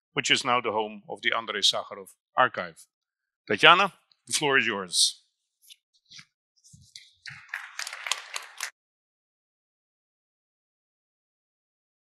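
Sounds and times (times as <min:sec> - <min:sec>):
audience applause: 0:07.3 - 0:08.7.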